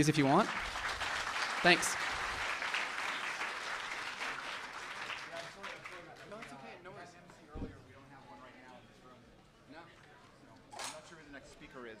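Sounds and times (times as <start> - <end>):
crowd chatter: 5.3 - 12.0.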